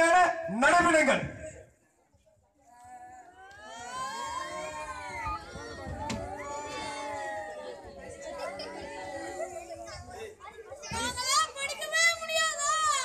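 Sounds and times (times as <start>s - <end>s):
children speaking and calling out: 2.7s - 13.0s.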